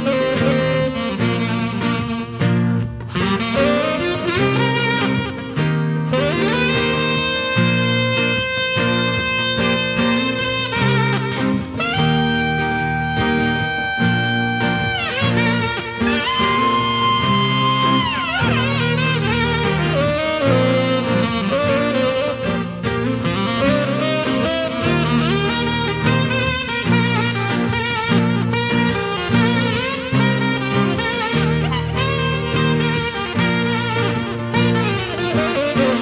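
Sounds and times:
live rock band: 0.0s - 36.0s
saxophone solo: 0.0s - 36.0s.

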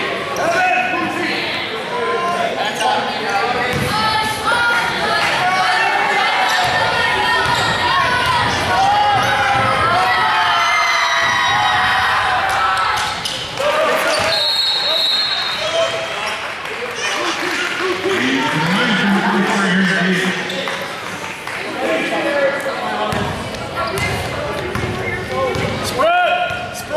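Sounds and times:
crowd and players' voices: 0.0s - 26.9s
basketball bouncing: 3.7s - 3.9s, 23.1s - 25.7s
high whistle: 14.3s - 15.7s.

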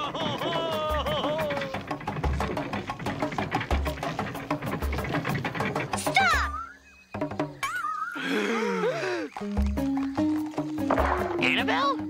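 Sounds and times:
fast hand-drum strokes: 0.0s - 6.6s.

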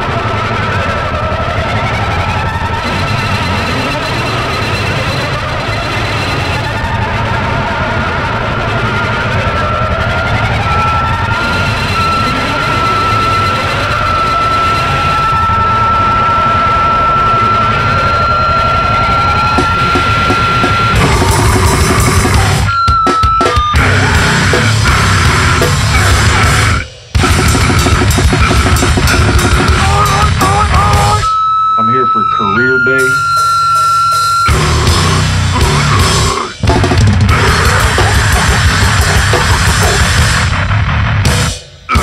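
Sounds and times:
distorted guitars droning: 0.0s - 42.0s
rapid drum hits: 19.5s - 31.3s, 33.0s - 42.0s.

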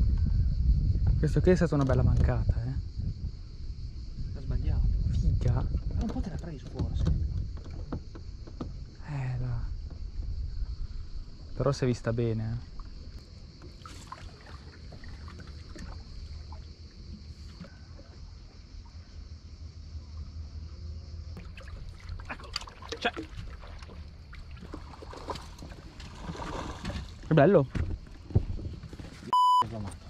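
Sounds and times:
wind rumble on microphone: 0.0s - 13.3s, 23.3s - 29.3s.

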